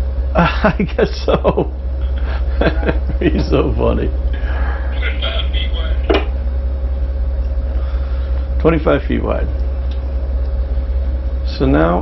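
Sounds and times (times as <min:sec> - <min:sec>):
boat engines rumbling: 0:00.0 - 0:12.0
thin steady hum: 0:00.0 - 0:12.0.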